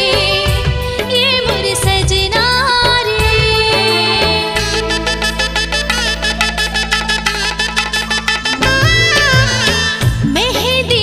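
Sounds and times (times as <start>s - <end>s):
sustained bass notes: 0.0s - 11.0s
quick percussion beat: 3.2s - 11.0s
wind instrument melody: 4.2s - 10.8s.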